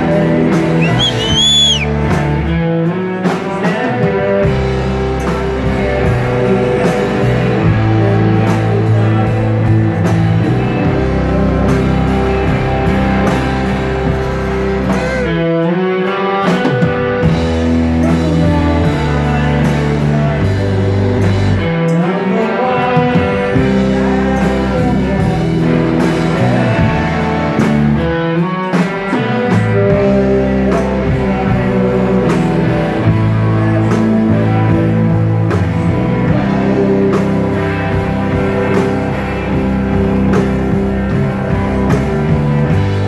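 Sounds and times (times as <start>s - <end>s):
drum kit: 0.0s - 43.0s
electric guitars: 0.0s - 43.0s.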